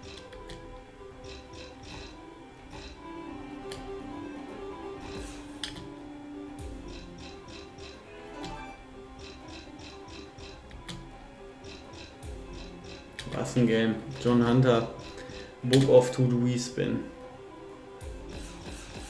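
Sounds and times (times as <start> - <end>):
slot machine game melody: 0.0 - 19.0
clicking ticks of spinning reels: 1.2 - 3.0, 6.8 - 8.0, 9.2 - 11.0, 11.6 - 13.4, 14.1 - 15.9.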